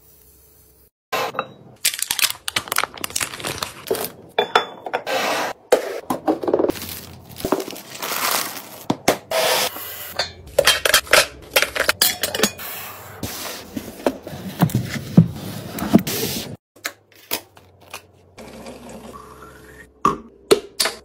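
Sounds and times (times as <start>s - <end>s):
containers being handled and set down: 6.1s - 8.0s.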